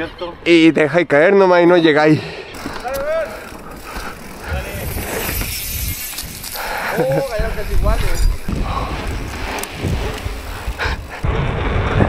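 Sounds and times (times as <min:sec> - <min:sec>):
bike tyres rolling on pavement: 0:02.5 - 0:12.0.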